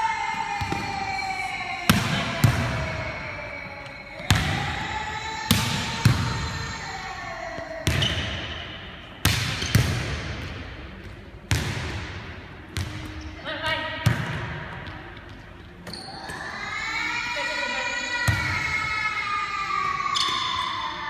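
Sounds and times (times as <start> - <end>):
volleyball slaps echoing in gym: 0.0 - 7.0, 7.6 - 16.4, 18.2 - 18.8, 19.8 - 20.8.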